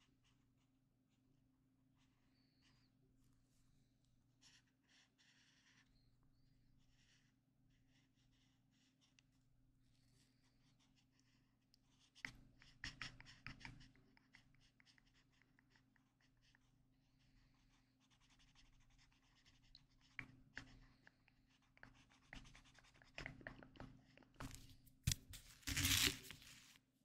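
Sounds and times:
felt tip scratching on paper: 0:04.4 - 0:07.3, 0:10.0 - 0:16.7, 0:17.5 - 0:26.8.

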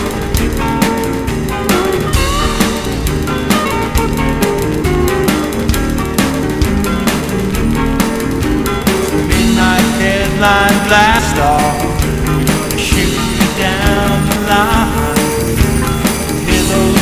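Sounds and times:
instrumental rock music: 0:00.0 - 0:17.0.

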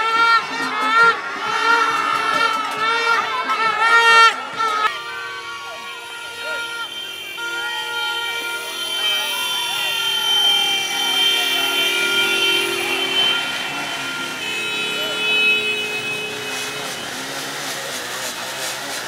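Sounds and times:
crowd shouting: 0:00.0 - 0:18.7
vehicle horns blasting: 0:00.0 - 0:19.0.

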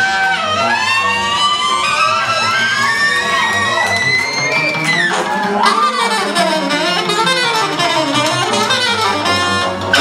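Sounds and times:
tenor saxophone long high note: 0:00.0 - 0:10.0.

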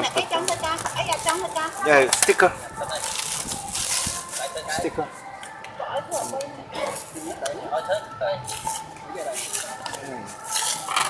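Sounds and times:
paper and plastic crinkling: 0:00.0 - 0:11.0.

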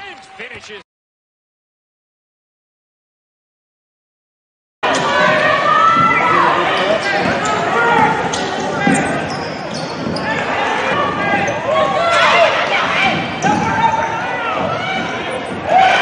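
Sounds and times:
sneakers squeaking on floor: 0:04.9 - 0:15.8.

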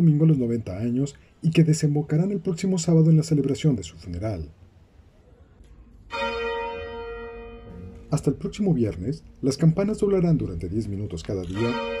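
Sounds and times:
church bell ringing: 0:06.1 - 0:08.6, 0:11.5 - 0:12.0.

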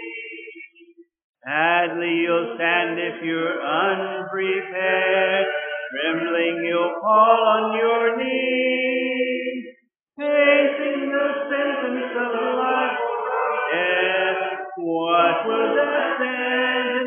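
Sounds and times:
congregation singing a hymn: 0:01.5 - 0:17.0.

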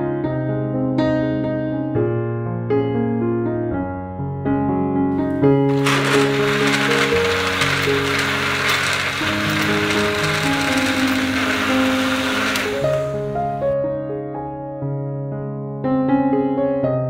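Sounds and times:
electric blender running: 0:05.6 - 0:13.8.

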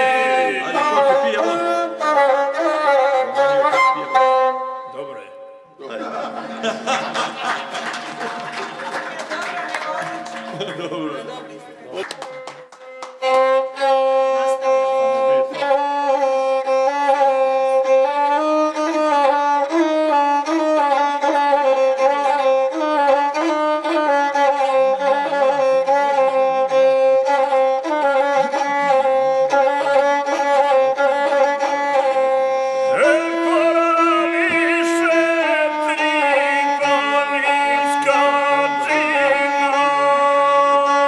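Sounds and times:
bowed single-string fiddle melody: 0:00.0 - 0:08.6, 0:09.9 - 0:41.0.

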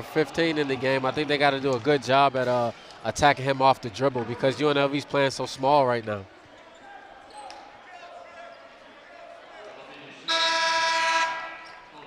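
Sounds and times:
arena horn blast: 0:10.3 - 0:11.8.

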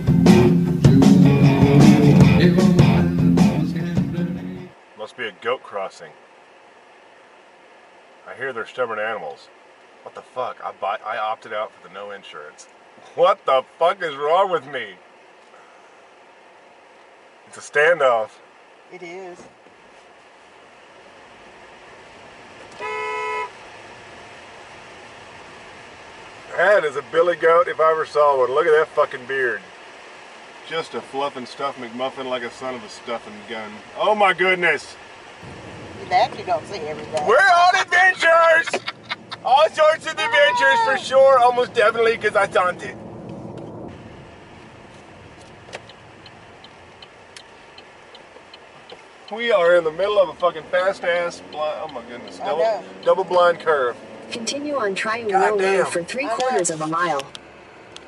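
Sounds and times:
low road and cabin hum: 0:00.0 - 0:58.0
car horn blast: 0:22.7 - 0:23.6
light regular ticking: 0:45.0 - 0:53.4.

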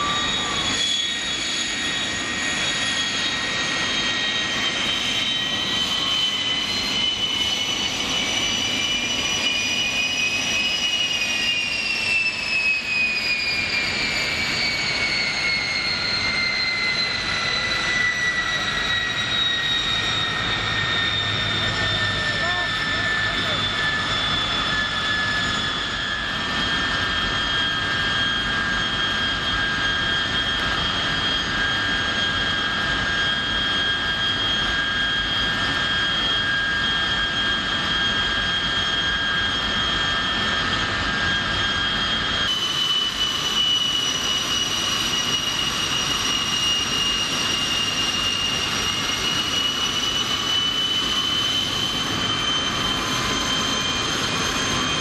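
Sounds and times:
jet engines roaring with whine: 0:00.0 - 0:55.0.

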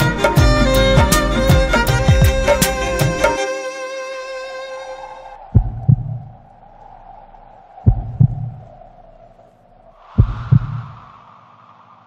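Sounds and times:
heartbeat thumps: 0:00.4 - 0:03.4, 0:05.5 - 0:06.4, 0:07.8 - 0:08.8, 0:10.1 - 0:11.0.

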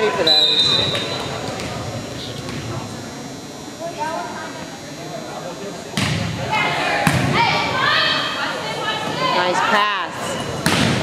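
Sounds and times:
volleyball being hit: 0:05.9 - 0:06.3, 0:07.0 - 0:07.4, 0:10.6 - 0:11.0
people shouting: 0:06.5 - 0:09.9.

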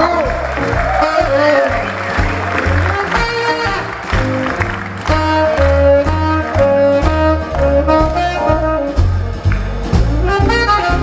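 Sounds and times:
horn holding long notes: 0:00.0 - 0:09.0, 0:10.1 - 0:11.0
bass line: 0:00.0 - 0:11.0
jazz band playing: 0:00.0 - 0:11.0.

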